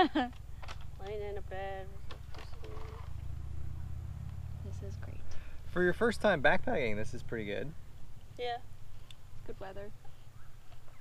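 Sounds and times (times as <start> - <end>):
low steady rumble: 0.0 - 10.8.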